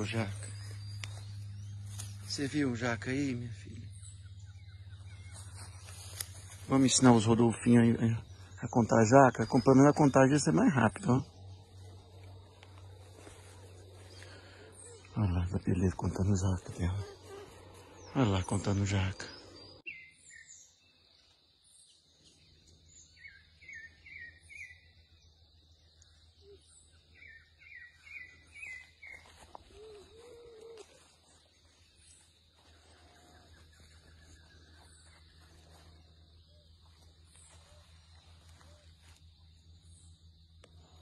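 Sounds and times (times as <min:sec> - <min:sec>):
birds chirping: 0:00.0 - 0:41.0
low bird calls: 0:00.0 - 0:41.0
steady low hum: 0:00.0 - 0:41.0.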